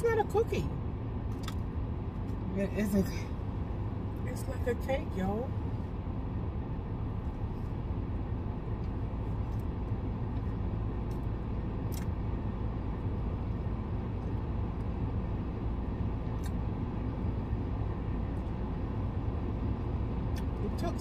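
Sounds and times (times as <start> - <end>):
car interior low rumble: 0.0 - 21.0.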